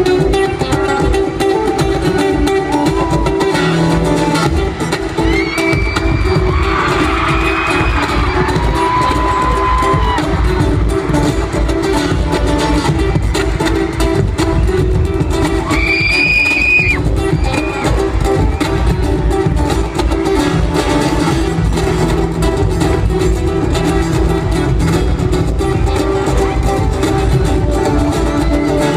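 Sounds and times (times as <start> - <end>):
acoustic guitar music over pa: 0.0 - 28.9
crowd cheering: 2.0 - 28.9.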